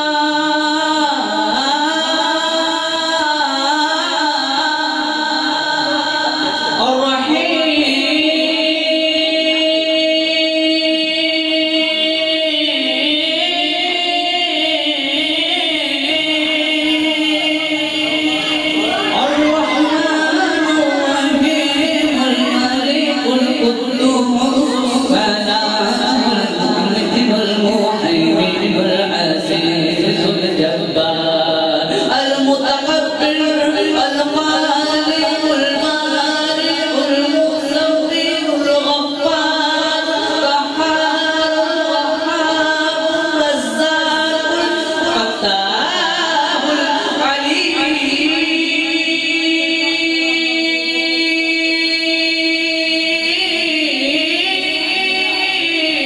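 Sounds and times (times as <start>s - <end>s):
man singing devotional chant: 0.0s - 56.0s.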